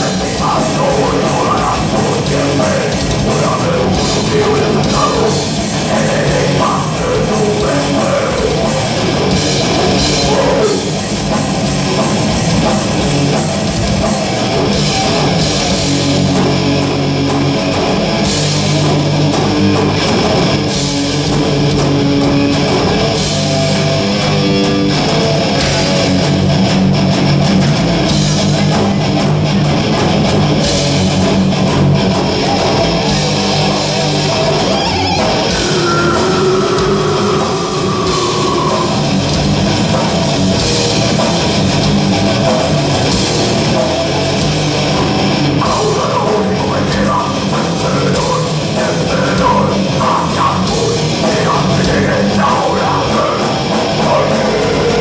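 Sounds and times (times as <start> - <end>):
drum kit: 0.0 - 55.0
electric guitars: 0.0 - 55.0
heavy metal band playing: 0.0 - 55.0.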